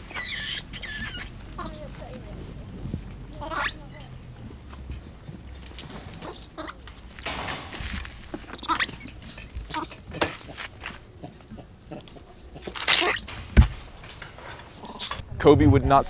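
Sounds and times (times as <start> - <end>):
young monkeys squealing: 0.0 - 1.9, 3.3 - 4.2, 6.2 - 7.4, 8.5 - 10.0, 11.9 - 13.6.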